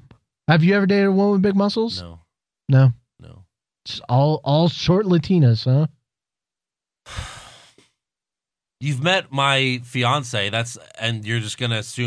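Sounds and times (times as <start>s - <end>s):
man sighing: 7.1s - 7.8s.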